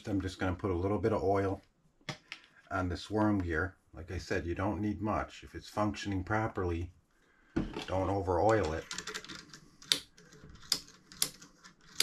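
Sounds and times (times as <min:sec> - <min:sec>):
small metal parts clicking: 0:08.5 - 0:12.0.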